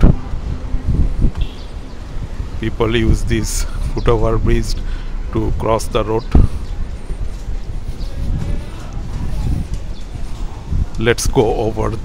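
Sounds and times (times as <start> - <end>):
road traffic: 0.0 - 12.0
wind on microphone: 0.0 - 12.0.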